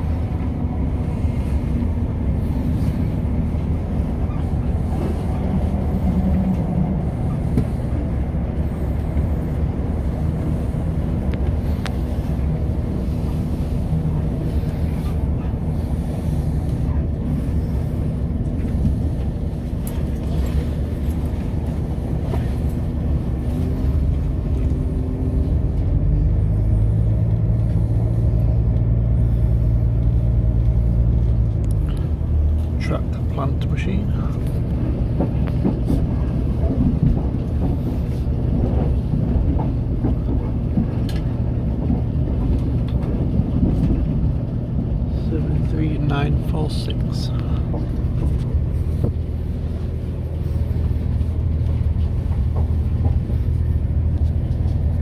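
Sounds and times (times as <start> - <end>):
train engine droning: 0.0 - 55.0
wheels rumbling on rails: 0.0 - 55.0.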